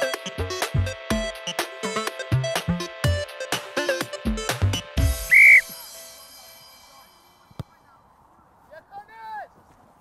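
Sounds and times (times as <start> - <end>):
referee's whistle blast: 5.2 - 5.7.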